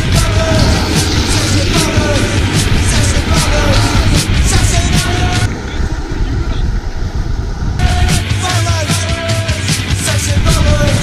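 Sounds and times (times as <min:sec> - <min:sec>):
music: 0:00.0 - 0:05.6, 0:07.8 - 0:11.0
skateboard wheels rolling on asphalt: 0:00.0 - 0:11.0
wind buffeting microphone: 0:00.0 - 0:11.0.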